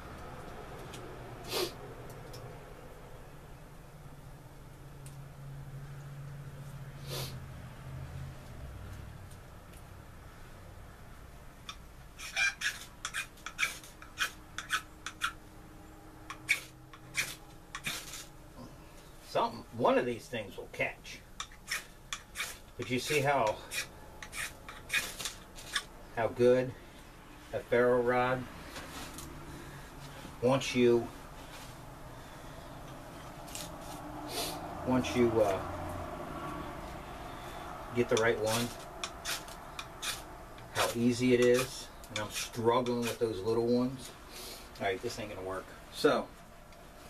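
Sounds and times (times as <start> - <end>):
knife scraping ferro rod: 11.7 - 15.4, 16.3 - 18.3, 21.4 - 25.9, 38.0 - 43.4.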